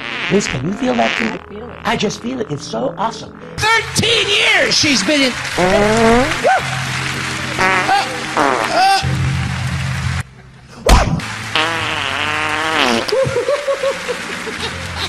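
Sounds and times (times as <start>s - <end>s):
buzzing fart sounds: 0.0s - 2.5s, 5.6s - 6.4s, 7.4s - 9.4s, 11.0s - 13.5s
background music: 0.0s - 15.0s.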